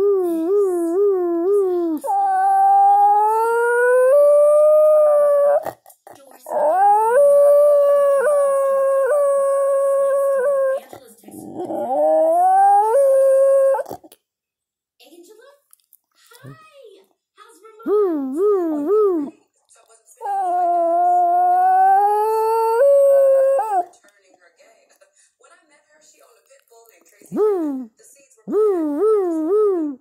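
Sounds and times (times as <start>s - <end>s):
dog yodelling and howling: 0.0s - 5.6s, 6.4s - 10.8s, 11.4s - 14.0s, 17.9s - 19.3s, 20.2s - 23.9s, 28.5s - 30.0s.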